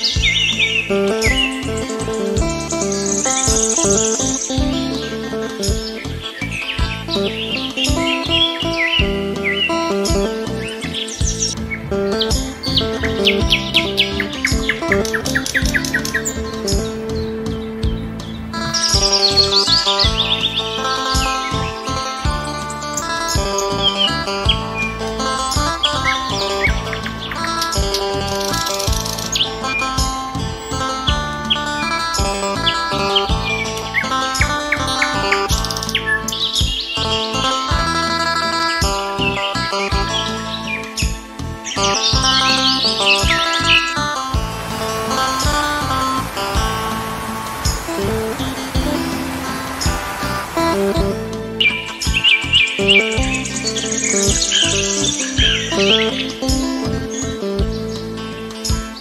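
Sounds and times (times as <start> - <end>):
birds chirping and trilling: 0.0 - 59.0
instrumental music: 0.0 - 59.0.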